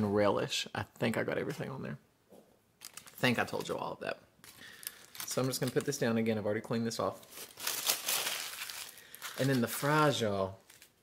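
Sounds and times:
aluminium foil crinkling: 0:02.8 - 0:03.8, 0:04.4 - 0:06.1, 0:07.2 - 0:11.0.

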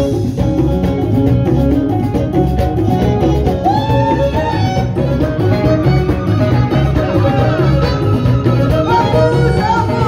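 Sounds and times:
plucked lutes and banjo: 0:00.4 - 0:10.0
bowed fiddle sliding melody: 0:03.0 - 0:10.0.

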